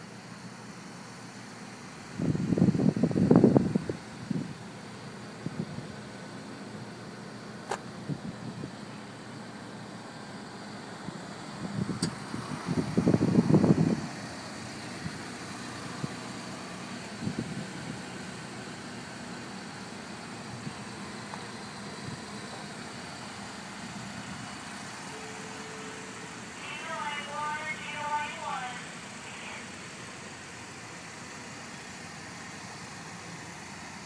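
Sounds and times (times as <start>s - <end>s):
low vehicle hum: 0.0s - 34.0s.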